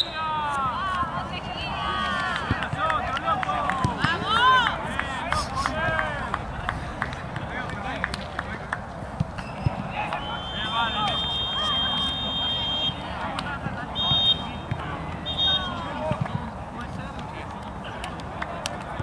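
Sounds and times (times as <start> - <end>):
players shouting: 0.0 - 8.0, 9.6 - 16.5
high whistle-like tone: 9.4 - 13.0.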